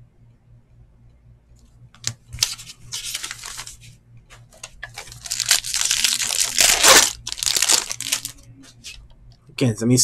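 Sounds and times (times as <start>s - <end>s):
foil wrapper tearing and crinkling: 2.4s - 3.7s, 4.9s - 8.4s.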